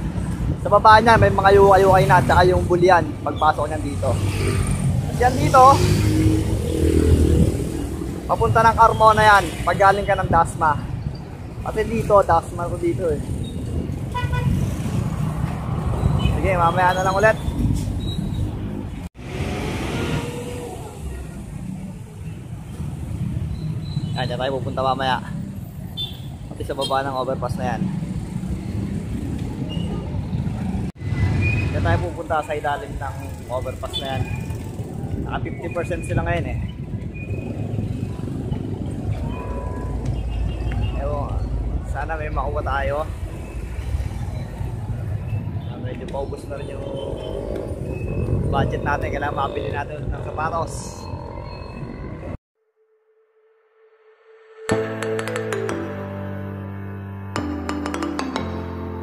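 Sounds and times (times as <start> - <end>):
road traffic passing: 0.0 - 52.4.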